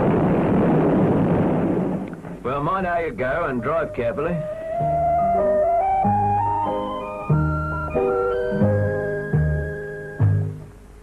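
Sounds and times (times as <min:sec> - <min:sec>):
explosion rush of noise: 0:00.0 - 0:03.1.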